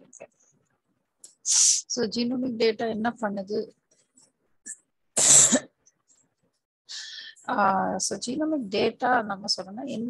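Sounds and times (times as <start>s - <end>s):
person coughing: 5.2s - 5.7s.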